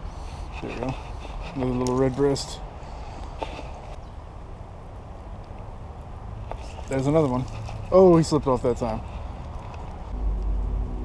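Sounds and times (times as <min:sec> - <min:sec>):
steady low rumble: 0:08.8 - 0:11.0.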